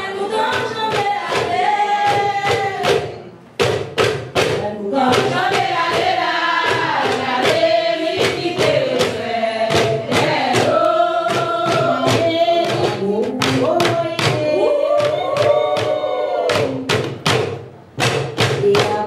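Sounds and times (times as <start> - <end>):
steady percussion beat: 0.1 - 19.0.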